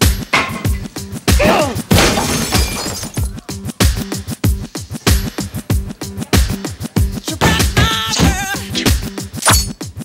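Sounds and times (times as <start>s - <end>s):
glass shattering: 1.9s - 3.3s, 9.4s - 9.8s
hip-hop beat: 3.4s - 10.0s.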